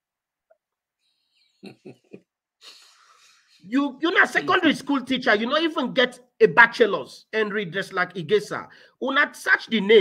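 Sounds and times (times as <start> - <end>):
man chuckling: 1.6 - 2.9
man breathing in: 2.6 - 3.6, 8.7 - 9.0.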